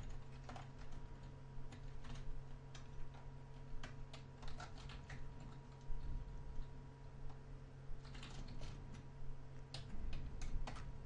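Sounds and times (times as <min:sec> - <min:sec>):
keyboard typing: 0:00.0 - 0:06.8, 0:08.0 - 0:11.0
steady low hum: 0:00.0 - 0:11.0.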